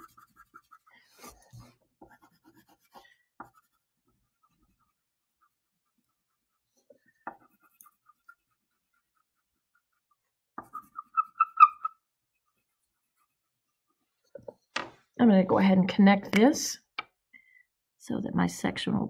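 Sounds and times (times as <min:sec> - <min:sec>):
crayon scratching on paper: 0:00.0 - 0:14.4
crayon squeak: 0:10.6 - 0:12.1.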